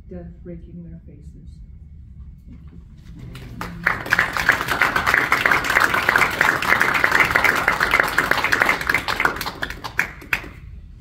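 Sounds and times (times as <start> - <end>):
audience applauding: 3.1 - 10.7.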